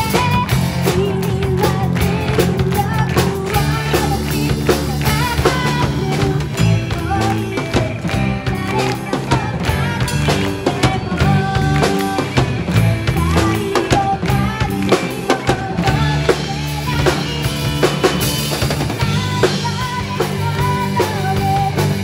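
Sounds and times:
girl singing into a microphone: 0.0 - 17.8, 19.0 - 22.0
drum kit beat: 0.0 - 22.0
live rock band playing: 0.0 - 22.0.

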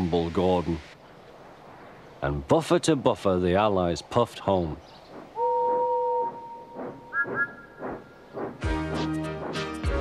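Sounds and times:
steam locomotive whistles: 5.4 - 7.8
music: 8.6 - 10.0.

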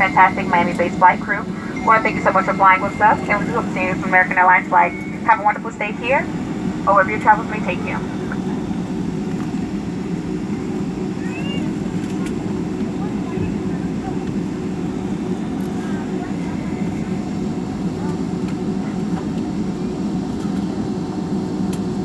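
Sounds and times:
jet engines idling in cabin: 0.0 - 22.0.

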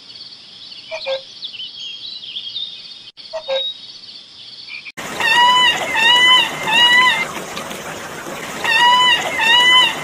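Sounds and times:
water hissing: 5.0 - 10.0
salamander crying: 8.6 - 10.0.

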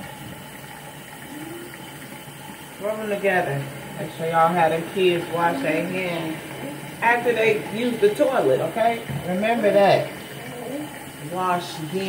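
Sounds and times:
sink tap running: 0.0 - 12.0.

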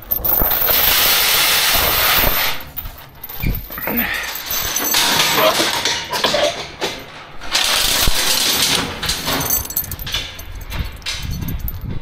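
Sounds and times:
metal ramp gate rattling and scraping: 0.0 - 12.0.

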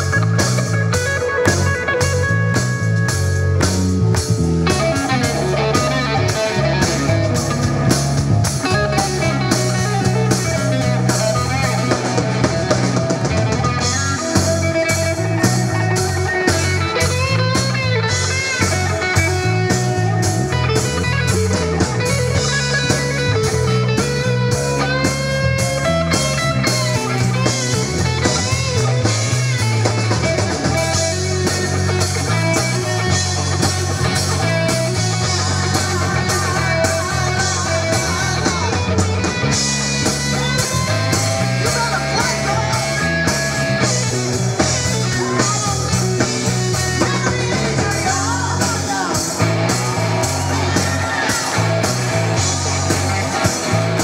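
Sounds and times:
electric guitar lead: 0.0 - 54.0
live blues-rock band: 0.0 - 54.0.

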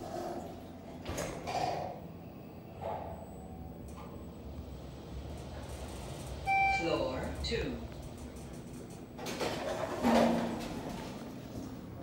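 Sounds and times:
elevator doors closing: 3.5 - 12.0.

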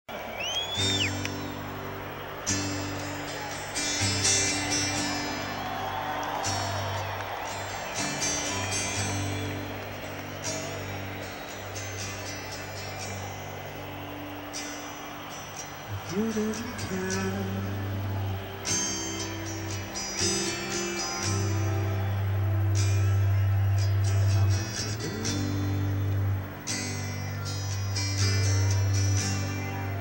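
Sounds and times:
short whistle: 0.1 - 1.6
crowd voices and shouting: 0.1 - 30.0
acoustic guitar strumming chords: 0.7 - 30.0.

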